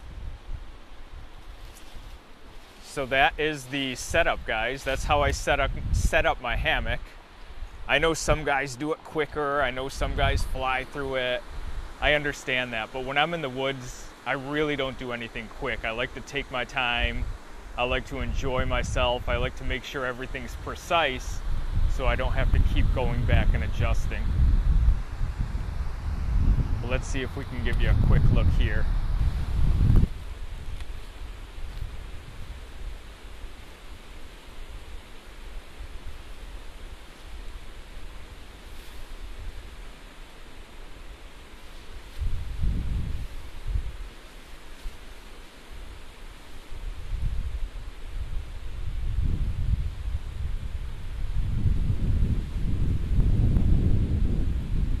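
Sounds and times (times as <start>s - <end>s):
wind buffeting microphone: 0.0s - 2.1s, 3.1s - 8.7s, 9.7s - 12.3s, 17.0s - 33.4s, 41.9s - 44.1s, 46.8s - 55.0s
steady outdoor hiss: 0.0s - 55.0s.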